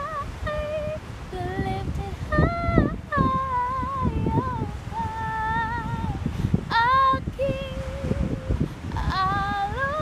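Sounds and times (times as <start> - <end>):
wind rumble on microphone: 0.0 - 10.0
woman singing unaccompanied: 0.0 - 10.0.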